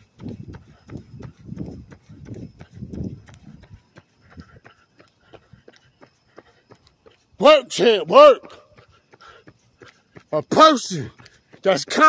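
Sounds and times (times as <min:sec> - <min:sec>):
running footfalls: 0:00.0 - 0:12.0.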